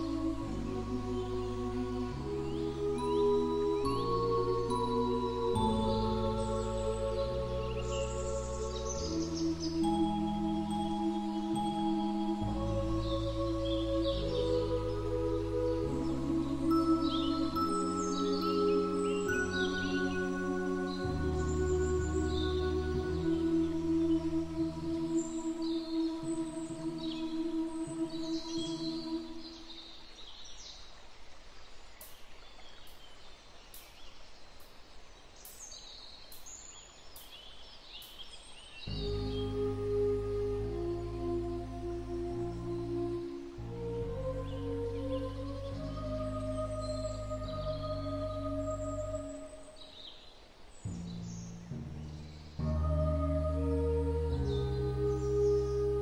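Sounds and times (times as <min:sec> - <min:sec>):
ambient music tones: 0:00.0 - 0:29.8, 0:38.9 - 0:50.0, 0:50.6 - 0:56.0
small birds chirping: 0:00.0 - 0:56.0
steady outdoor hiss: 0:00.0 - 0:56.0.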